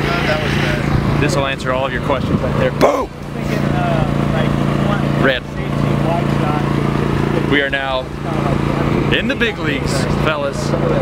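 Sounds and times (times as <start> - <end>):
portable generator humming: 2.8 - 5.0.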